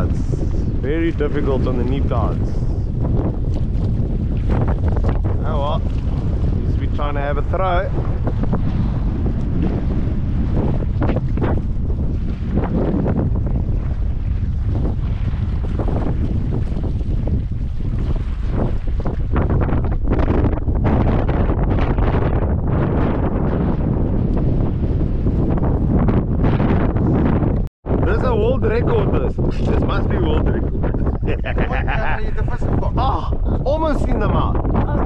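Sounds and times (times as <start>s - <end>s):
wind buffeting microphone: 0.0s - 35.0s.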